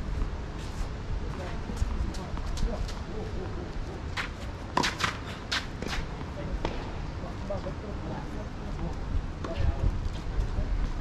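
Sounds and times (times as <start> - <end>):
wind rumble on microphone: 0.0 - 4.7, 5.8 - 11.0.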